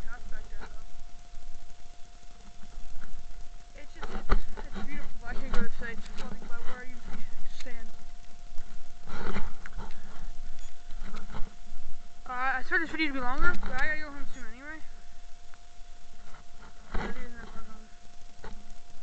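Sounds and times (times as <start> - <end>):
thin steady high tone: 0.0 - 19.0.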